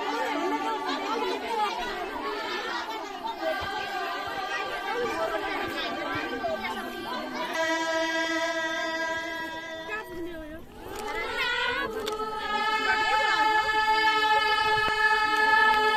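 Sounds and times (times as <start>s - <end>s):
crowd chatter: 0.0s - 15.9s
women singing in unison: 0.0s - 15.9s.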